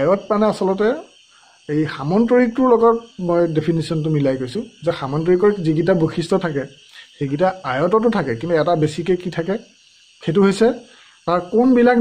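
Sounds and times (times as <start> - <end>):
man speaking: 0.0 - 1.1, 1.7 - 9.6, 10.2 - 12.0
insect chirring: 0.0 - 12.0.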